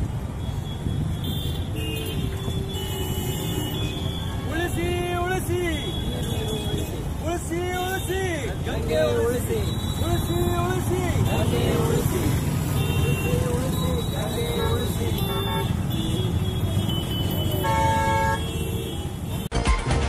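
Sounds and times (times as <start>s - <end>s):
street traffic rumble: 0.0s - 19.5s
vehicle horn: 0.4s - 4.4s, 12.7s - 19.5s
voices chattering: 3.9s - 19.5s.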